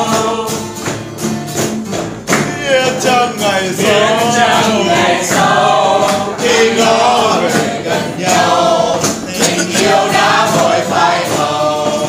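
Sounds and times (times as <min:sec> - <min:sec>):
group of people singing: 0:00.0 - 0:01.0, 0:02.3 - 0:12.0
acoustic guitar: 0:00.0 - 0:12.0.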